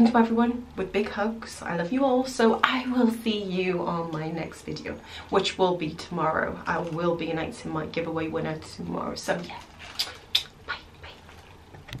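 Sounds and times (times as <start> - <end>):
kissing smacks: 10.0 - 10.9.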